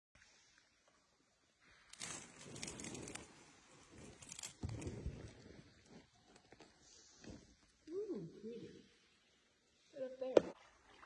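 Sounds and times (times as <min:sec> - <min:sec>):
rustling and clicking on a raft: 0:01.6 - 0:07.8.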